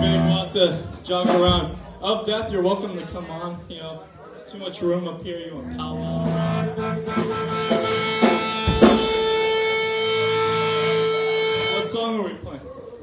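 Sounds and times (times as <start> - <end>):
electric guitar note sliding down: 5.6 - 11.9
sharp hit: 6.2 - 10.9.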